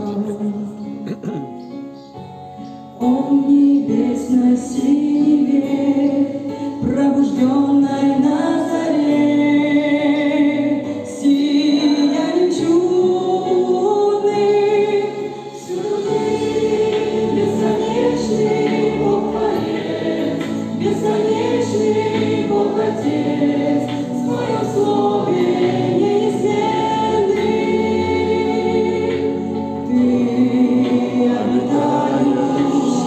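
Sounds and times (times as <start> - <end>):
congregation singing a hymn: 3.0 - 33.0.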